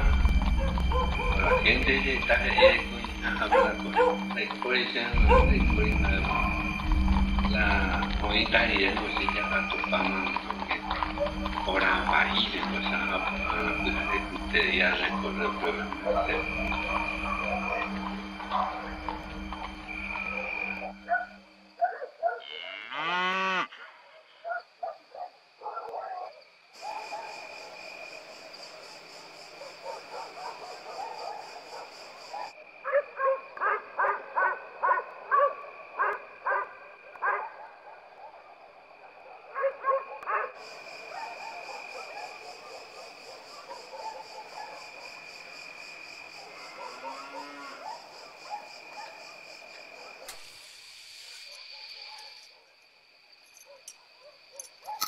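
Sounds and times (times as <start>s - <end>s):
high insect drone: 0.0s - 25.7s, 26.3s - 55.0s.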